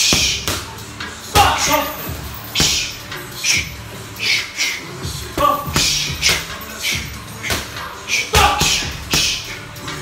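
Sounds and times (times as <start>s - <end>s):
boxing gloves hitting punching bag: 0.0s - 0.7s, 1.4s - 1.8s, 2.6s - 2.9s, 5.4s - 6.6s, 7.4s - 9.5s
hissing breaths: 2.5s - 5.2s.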